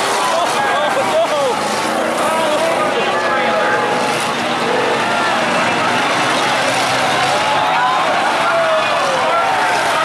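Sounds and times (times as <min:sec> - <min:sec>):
crowd talking and calling out: 0:00.0 - 0:10.0
race car engines running: 0:00.0 - 0:10.0.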